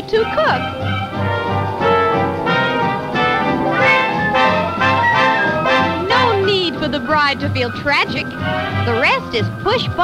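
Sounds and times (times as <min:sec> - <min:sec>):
orchestral brass music: 0:00.6 - 0:08.8.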